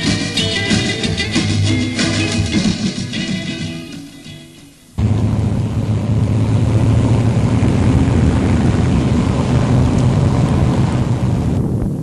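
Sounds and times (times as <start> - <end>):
car engines driving past: 5.0 - 11.5.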